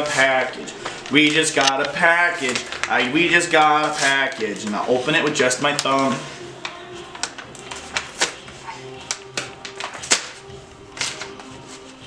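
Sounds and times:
paper envelope being torn open: 0:00.0 - 0:06.2.

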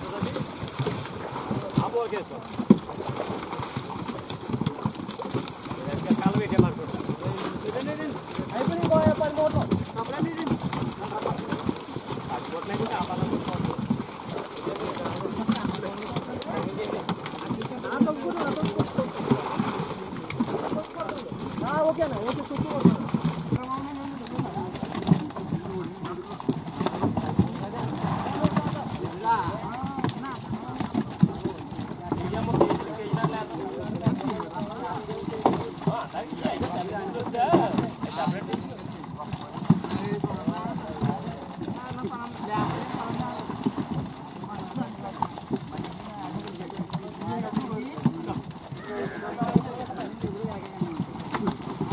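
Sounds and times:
men talking: 0:00.0 - 0:00.5, 0:01.6 - 0:02.6, 0:05.8 - 0:11.6, 0:12.2 - 0:23.2, 0:23.9 - 0:30.4, 0:32.0 - 0:43.4, 0:46.1 - 0:51.0
fish flapping and slapping: 0:00.0 - 0:51.9.

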